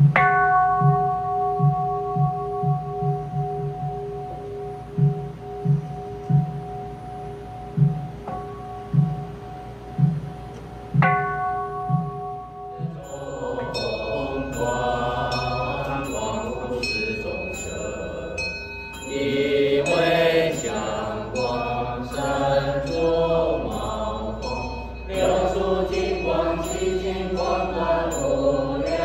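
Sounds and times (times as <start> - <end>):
bowl bell ringing: 0.0 - 29.0
small hand bell ringing: 12.7 - 29.0
voices chanting: 12.7 - 29.0.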